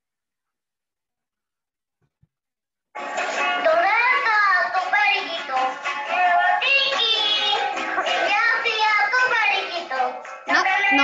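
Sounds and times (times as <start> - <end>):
person singing: 3.5 - 11.0.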